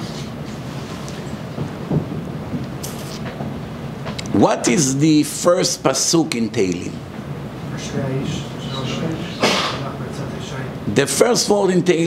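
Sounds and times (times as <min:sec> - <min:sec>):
low rumbling room noise: 0:00.0 - 0:12.0.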